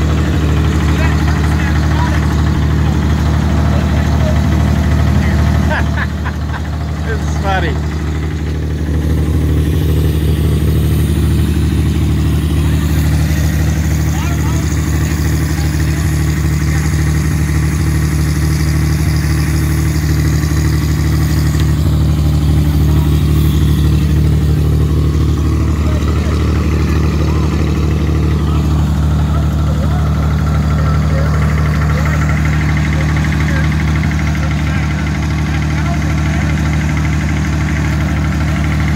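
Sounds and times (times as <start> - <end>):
truck engine idling: 0.0 - 38.9.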